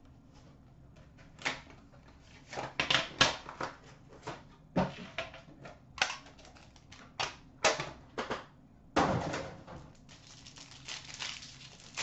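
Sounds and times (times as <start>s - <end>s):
plastic wrap crinkling: 10.0s - 12.0s.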